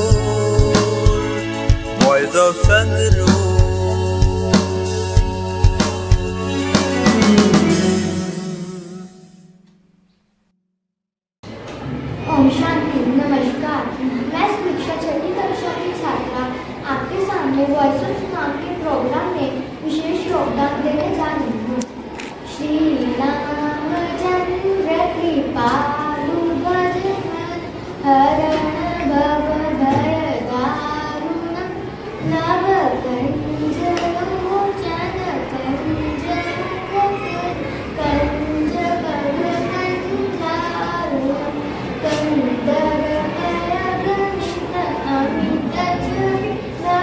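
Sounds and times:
girl singing: 22.7s - 47.0s.

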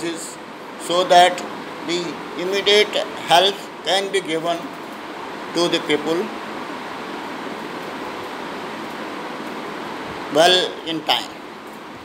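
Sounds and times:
room background hiss: 0.0s - 12.0s.

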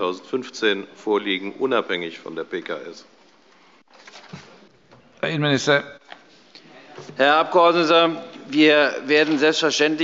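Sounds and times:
microphone hiss: 0.0s - 10.0s.

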